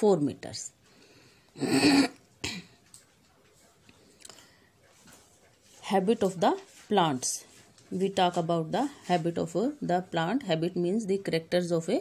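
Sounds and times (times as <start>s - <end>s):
woman coughing: 1.6s - 2.8s.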